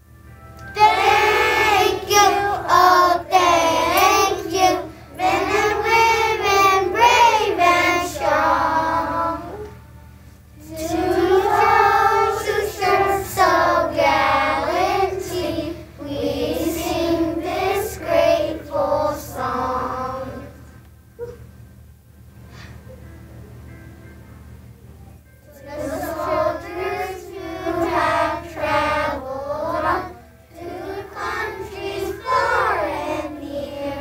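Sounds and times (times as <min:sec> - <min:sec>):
young children singing: 0:00.6 - 0:09.8, 0:10.6 - 0:20.6, 0:25.5 - 0:34.0.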